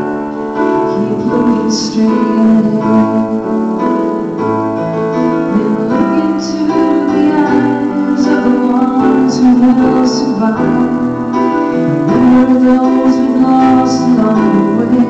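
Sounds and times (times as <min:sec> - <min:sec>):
electric piano chords: 0:00.0 - 0:15.0
girl singing into microphone: 0:00.8 - 0:03.7, 0:05.5 - 0:11.3, 0:12.1 - 0:15.0.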